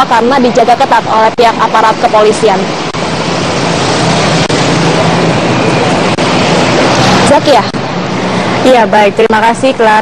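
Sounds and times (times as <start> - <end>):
road traffic passing: 0.0 - 10.0.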